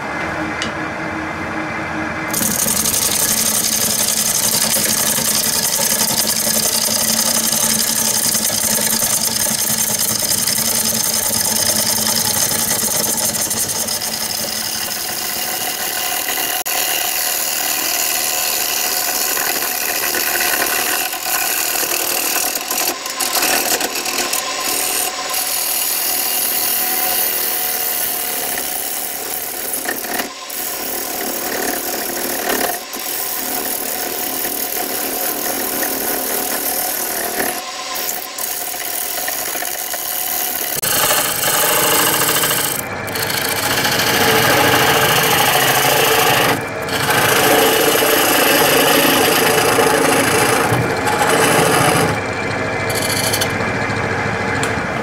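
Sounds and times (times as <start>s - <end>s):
gouge scraping spinning wood: 2.3s - 55.0s
wood lathe running: 2.3s - 55.0s.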